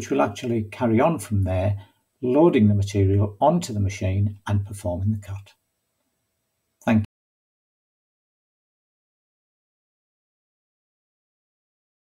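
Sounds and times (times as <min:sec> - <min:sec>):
person speaking: 0:00.0 - 0:05.5, 0:06.8 - 0:07.1.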